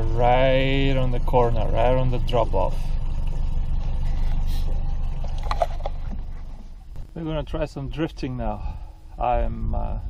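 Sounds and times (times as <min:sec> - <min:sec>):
outboard engine running: 0:00.0 - 0:07.4
wind: 0:00.0 - 0:10.0.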